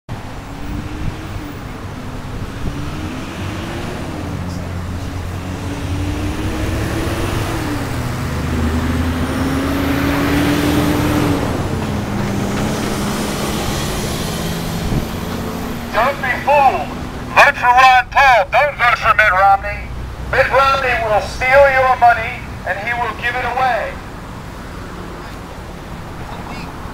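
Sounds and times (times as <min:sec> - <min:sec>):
vehicle engine passing: 0:00.1 - 0:26.9.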